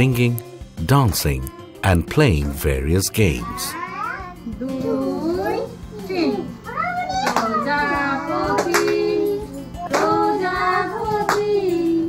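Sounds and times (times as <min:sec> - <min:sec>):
children chanting sing-song: 0:07.3 - 0:11.6.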